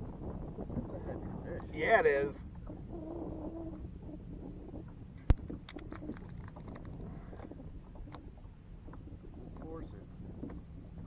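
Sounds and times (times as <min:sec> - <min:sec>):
faint low hum: 0:00.0 - 0:11.0
water noise: 0:00.0 - 0:11.0
wind noise on microphone: 0:00.0 - 0:11.0.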